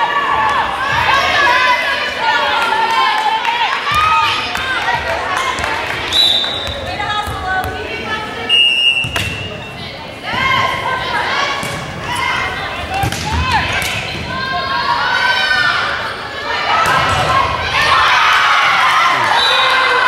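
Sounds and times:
short whistle blasts: 0:06.1 - 0:06.6, 0:08.5 - 0:09.4.

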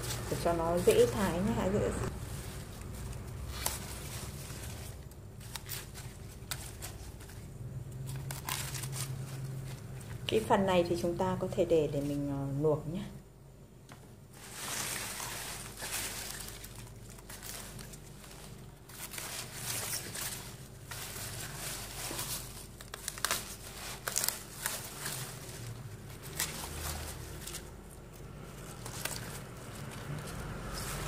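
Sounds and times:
leaves rustling and crinkling: 0:00.0 - 0:12.6, 0:14.0 - 0:31.0.

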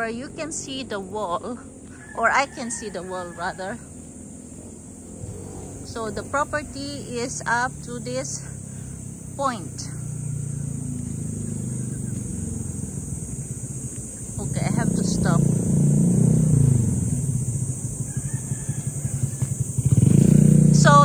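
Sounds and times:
small motorcycle passing: 0:00.0 - 0:21.0.

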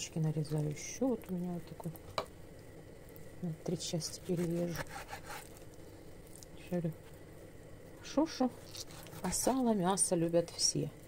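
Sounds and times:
woman's voice: 0:00.0 - 0:02.0, 0:03.4 - 0:04.9, 0:06.6 - 0:07.0, 0:08.0 - 0:08.6, 0:09.2 - 0:11.0
knife slicing through fat: 0:04.2 - 0:05.6, 0:08.6 - 0:09.6.

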